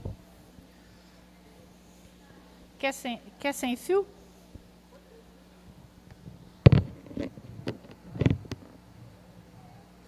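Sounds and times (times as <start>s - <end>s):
microphone handling knocks: 6.2s - 8.6s.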